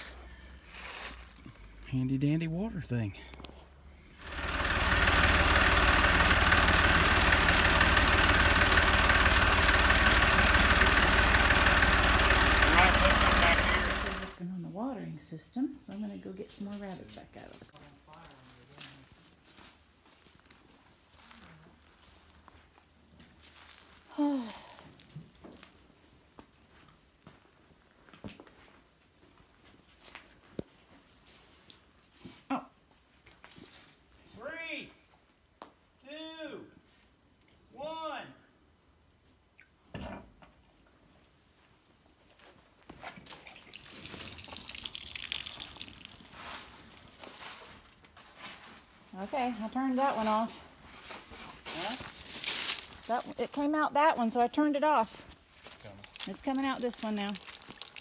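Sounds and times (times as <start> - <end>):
water rushing from a pipe: 43.4 - 46.8, 56.0 - 58.0.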